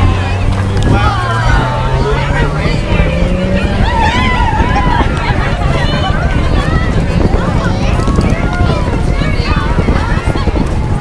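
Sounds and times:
car engine at high revs: 0.0s - 5.4s
people talking: 0.0s - 11.0s.

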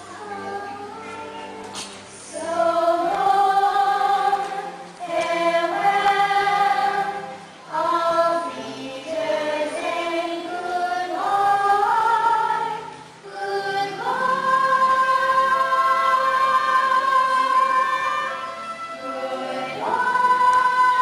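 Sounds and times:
voices singing long held notes: 0.0s - 21.0s.

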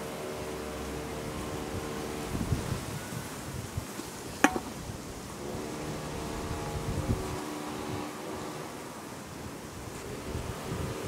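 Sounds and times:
steady droning hum: 0.0s - 11.0s.

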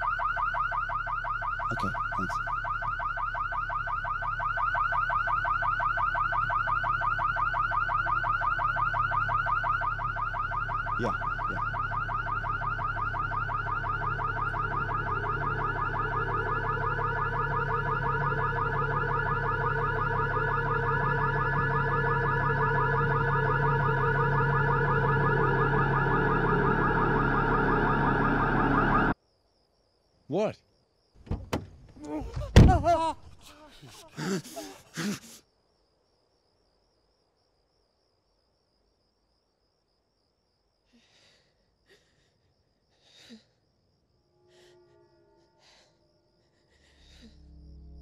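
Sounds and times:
car alarm warbling: 0.0s - 29.2s
low drone: 8.4s - 29.2s, 44.4s - 48.0s.

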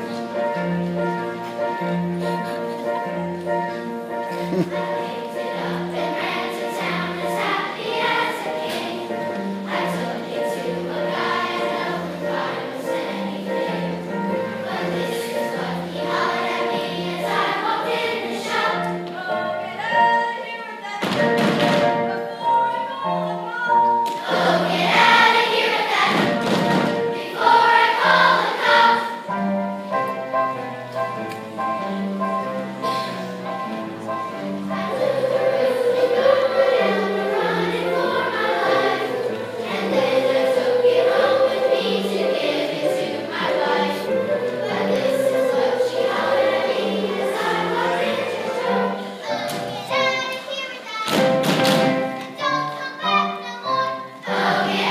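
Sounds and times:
children's chorus singing: 0.0s - 54.9s.

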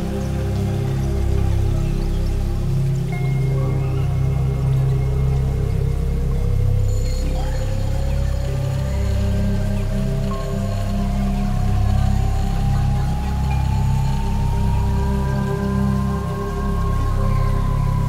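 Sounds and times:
ambient electronic synthesizer music: 0.0s - 18.0s.

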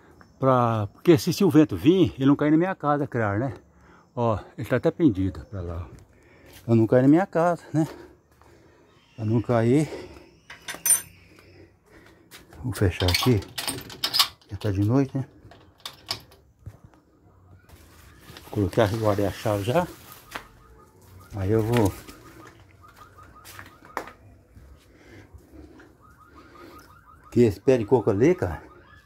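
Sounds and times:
metallic clicks and clinks: 10.5s - 11.2s, 13.0s - 14.8s.

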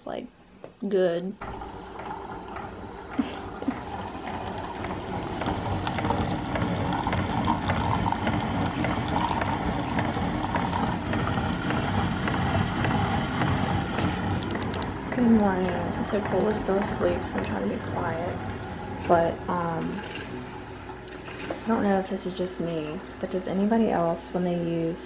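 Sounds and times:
coffee maker pump hum and hiss: 1.0s - 25.0s
coffee streaming into mug: 1.4s - 19.4s.

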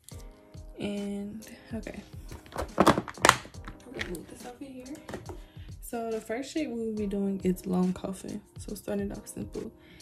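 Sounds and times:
plastic box knocks: 2.3s - 4.1s, 5.0s - 5.5s.

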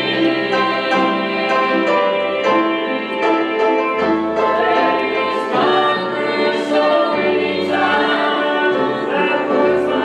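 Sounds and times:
keyboard: 0.0s - 10.0s
voices singing a gospel hymn: 0.0s - 10.0s.

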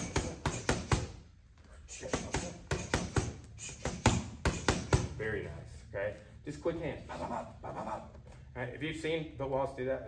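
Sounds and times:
boxing gloves smacking mitts: 0.0s - 1.3s, 1.9s - 5.2s.

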